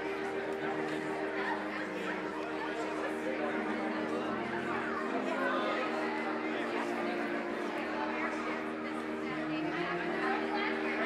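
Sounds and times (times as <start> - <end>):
murmur of overlapping conversations: 0.0 - 11.0.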